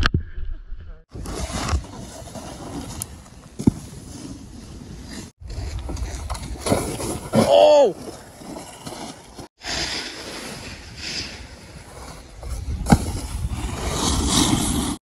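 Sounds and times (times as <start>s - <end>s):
snowboard scraping over snow: 1.1s - 15.0s
person shouting: 7.4s - 8.0s.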